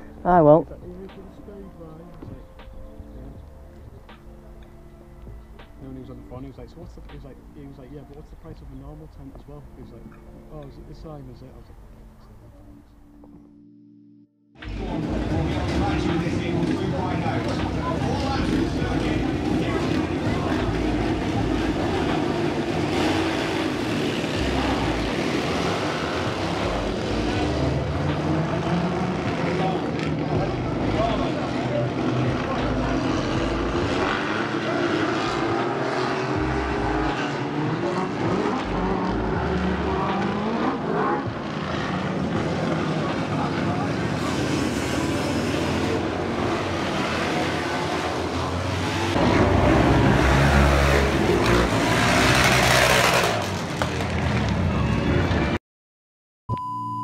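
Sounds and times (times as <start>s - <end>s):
motorcycle engines revving: 14.6s - 55.6s.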